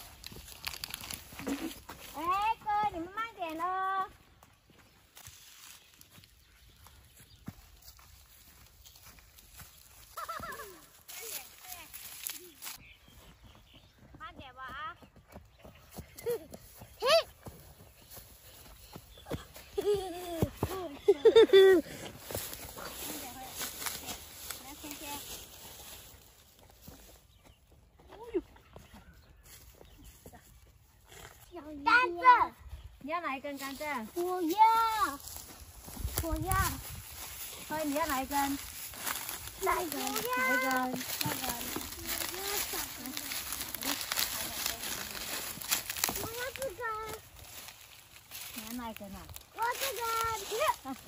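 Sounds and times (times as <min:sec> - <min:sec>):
footsteps on gravel: 0:00.0 - 0:30.6, 0:33.0 - 0:51.0
child's voice: 0:02.1 - 0:04.2, 0:10.2 - 0:12.6, 0:17.0 - 0:17.4, 0:31.5 - 0:32.7, 0:34.2 - 0:35.3, 0:36.1 - 0:36.8, 0:39.6 - 0:44.6, 0:46.1 - 0:47.2, 0:49.6 - 0:51.0.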